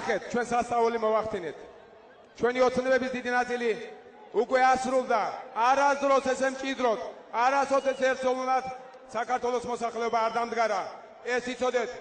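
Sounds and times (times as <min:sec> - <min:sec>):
man speaking: 0:00.0 - 0:01.6, 0:02.4 - 0:12.0.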